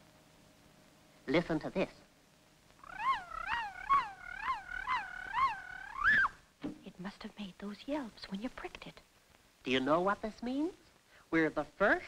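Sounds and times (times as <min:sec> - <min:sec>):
yelps rising and falling in pitch: 0:02.8 - 0:06.5.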